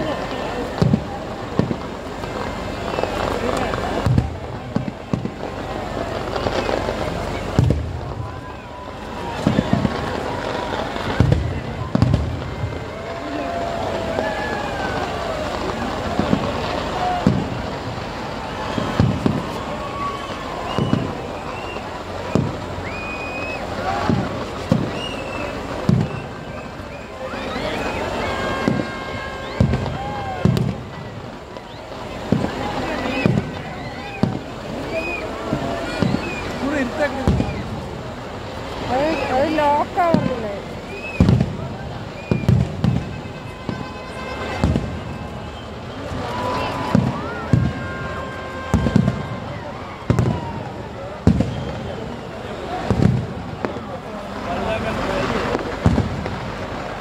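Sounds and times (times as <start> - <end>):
fireworks bangs: 0.0 - 57.0
large outdoor crowd: 0.0 - 57.0
high whistles: 2.6 - 4.3, 18.4 - 30.8, 31.5 - 32.1, 32.8 - 37.9, 38.9 - 50.6, 51.3 - 53.0.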